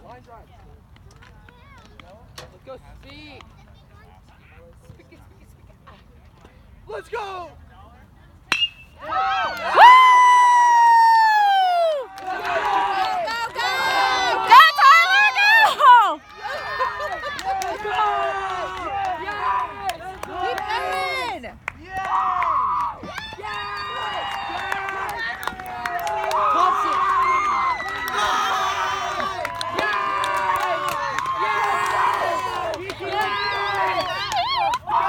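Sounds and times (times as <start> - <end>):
crowd shouting and cheering: 8.6 - 35.0.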